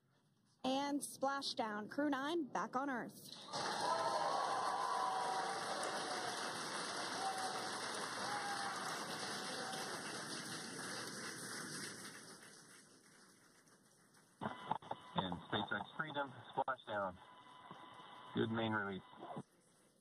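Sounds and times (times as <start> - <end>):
faint cheers: 3.5 - 10.6
applause: 3.5 - 14.4.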